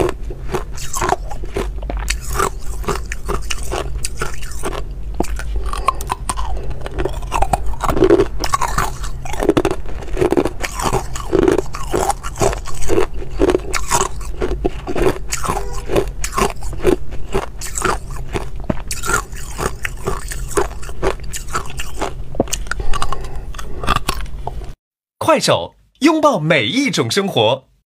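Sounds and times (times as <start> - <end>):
ice cubes being chewed: 0.0 - 24.7.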